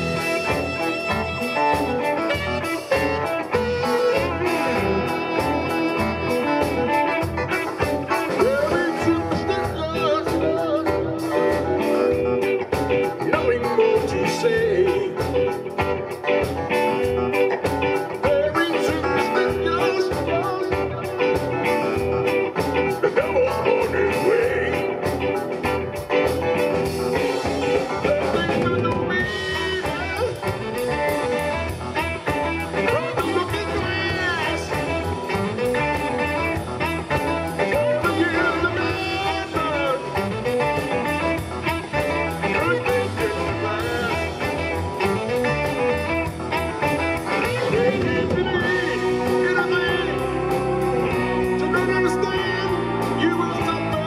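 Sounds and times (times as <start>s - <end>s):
bass guitar: 0.0s - 54.0s
electric guitar: 0.0s - 54.0s
keyboards: 0.0s - 54.0s
steady drum beat: 0.0s - 54.0s.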